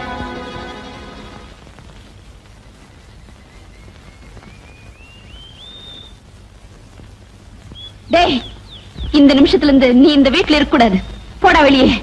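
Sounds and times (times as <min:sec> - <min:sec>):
whistled bird notes: 0:02.6 - 0:06.2, 0:07.7 - 0:09.1, 0:10.7 - 0:11.6
falling whistle: 0:03.4 - 0:06.2.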